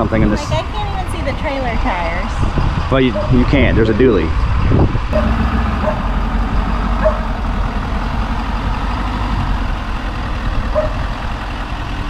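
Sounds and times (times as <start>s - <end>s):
pickup truck engine idling: 4.5s - 12.0s.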